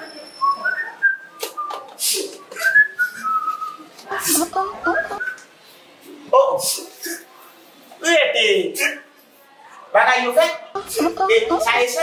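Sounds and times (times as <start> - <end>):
person whistling short notes: 2.6 - 3.8.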